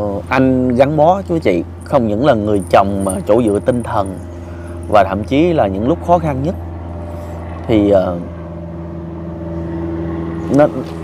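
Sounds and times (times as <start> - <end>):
low mechanical hum: 0.0 - 11.0
person speaking: 0.7 - 5.9.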